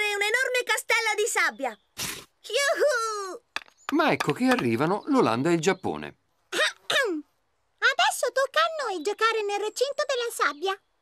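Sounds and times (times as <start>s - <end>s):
cartoon child's voice ooh: 2.5s - 3.4s.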